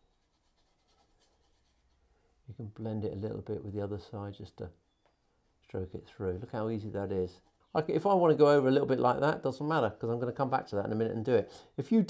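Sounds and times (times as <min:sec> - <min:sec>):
brush scratching dry paint: 0:00.0 - 0:02.1, 0:04.4 - 0:08.2.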